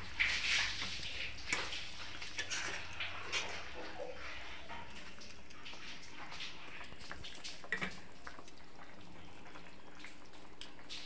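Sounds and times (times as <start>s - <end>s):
curry sizzling and bubbling: 0.0s - 11.0s.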